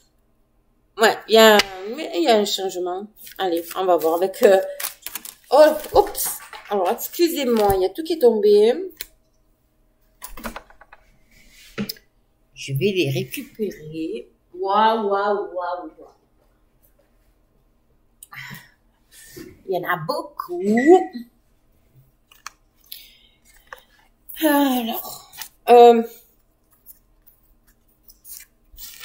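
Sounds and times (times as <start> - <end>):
cards clicking and rustling: 3.2 - 7.9, 22.3 - 24.0, 26.7 - 29.0.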